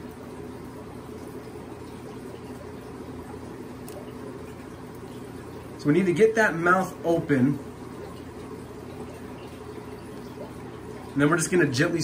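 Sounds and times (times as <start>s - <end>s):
aquarium equipment hum: 0.0s - 12.0s
water bubbling: 0.0s - 12.0s.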